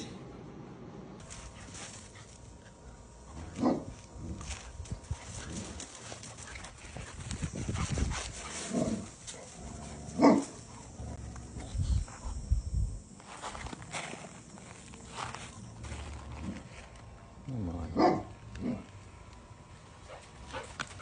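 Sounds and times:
dog barking: 17.9 - 18.8.

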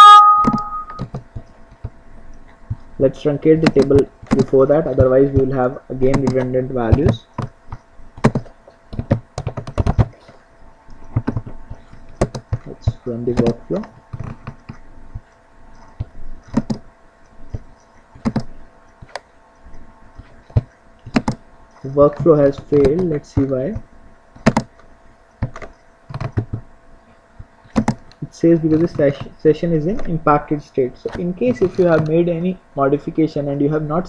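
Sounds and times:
keyboard and mouse clicks: 0.4 - 2.8, 3.6 - 23.8, 24.4 - 26.6, 27.6 - 30.1, 31.1 - 32.2.

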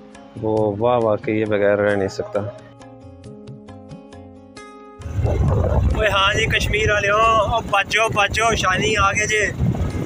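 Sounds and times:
soft background music: 0.0 - 10.0
wind buffeting microphone: 5.0 - 10.0.

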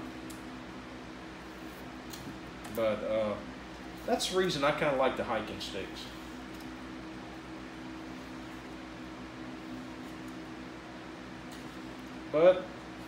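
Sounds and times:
machine hum with hiss: 0.0 - 13.0.

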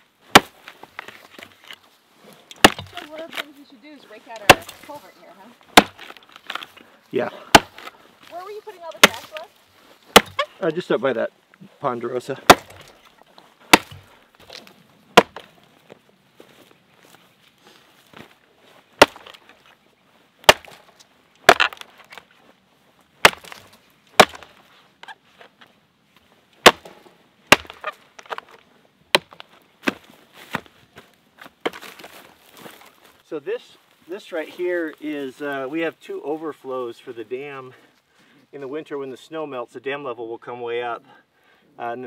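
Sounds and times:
axe chopping into log: 0.3 - 1.5, 2.5 - 3.4, 4.4 - 4.8, 5.7 - 6.6, 7.5 - 7.9, 9.0 - 9.4, 10.1 - 10.5, 12.5 - 13.0, 13.7 - 15.5, 19.0 - 19.4, 20.4 - 20.8, 21.4 - 22.2, 23.2 - 24.6, 26.6 - 30.6
wood splitting clatter: 2.5 - 3.4, 5.8 - 6.7, 7.5 - 8.0, 10.1 - 10.5, 12.5 - 13.1, 13.7 - 15.5, 19.0 - 19.5, 20.5 - 20.8, 21.4 - 22.2, 23.2 - 24.6, 26.6 - 30.0.

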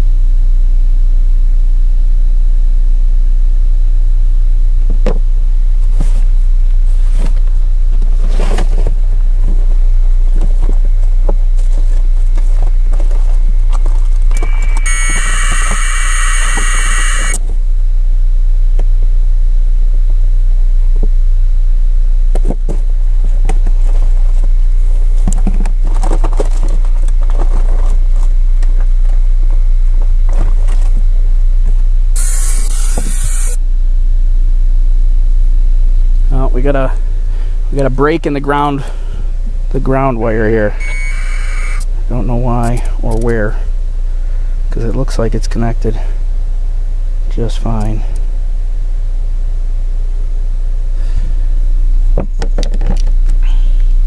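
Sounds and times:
steady low rumble: 0.0 - 40.9, 41.6 - 52.2
harsh high-pitched hissing: 14.4 - 17.4, 32.2 - 33.6.

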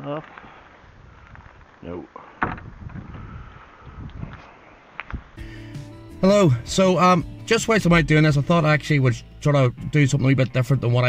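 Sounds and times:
background guitar music: 5.4 - 11.0.

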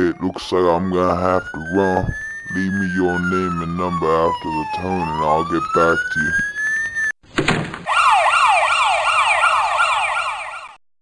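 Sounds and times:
police siren yelping: 0.0 - 7.2, 7.8 - 10.8.

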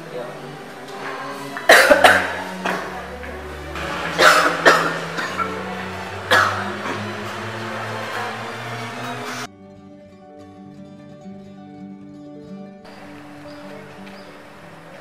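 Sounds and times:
background music: 0.0 - 15.0
man coughing: 1.7 - 2.8, 4.2 - 5.6, 6.3 - 7.0.

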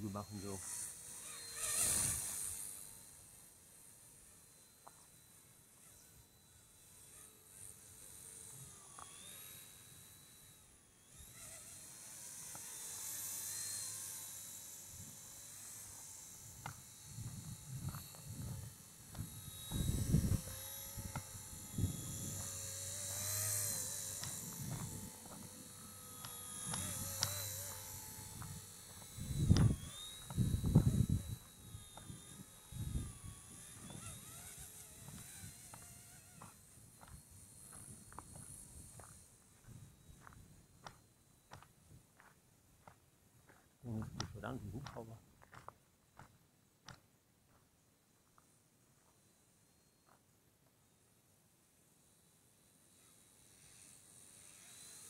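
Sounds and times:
model helicopter motor whine: 0.0 - 46.3, 48.4 - 50.2, 50.8 - 55.0.

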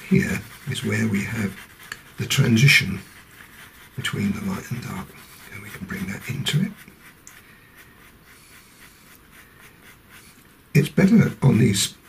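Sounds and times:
pastel pencil scratching on paper: 0.0 - 12.0.

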